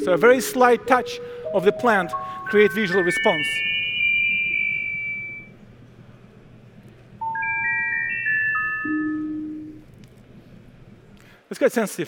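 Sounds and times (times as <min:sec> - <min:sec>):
synthesized bell-like chime tones: 0:00.0 - 0:05.5, 0:07.2 - 0:09.8.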